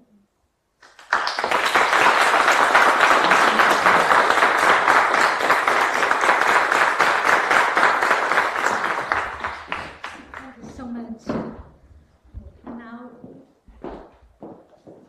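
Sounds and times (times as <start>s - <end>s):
audience applauding: 0.8s - 10.6s.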